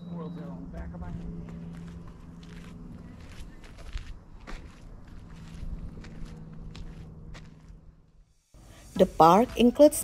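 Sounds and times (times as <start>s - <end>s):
footsteps on dirt trail: 1.0s - 8.2s, 8.9s - 10.0s.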